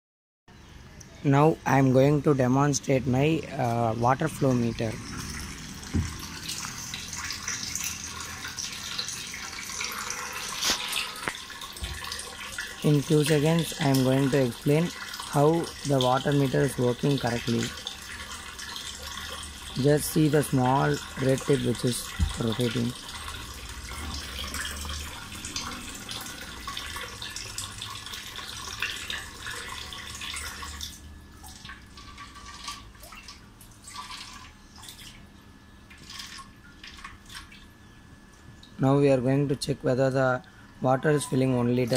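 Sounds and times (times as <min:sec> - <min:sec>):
water running from a hose into a tank: 0:01.4 - 0:41.9.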